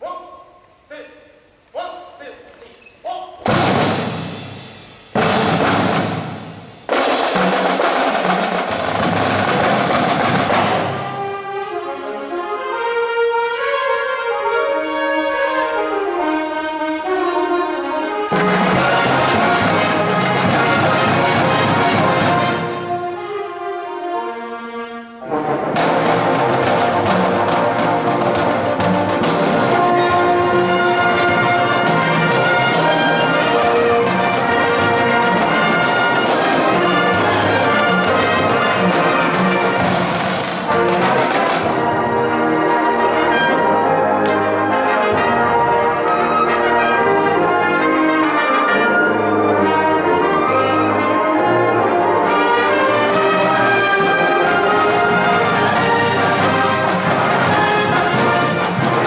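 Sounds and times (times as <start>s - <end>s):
marching band brass and percussion: 3.1s - 59.0s.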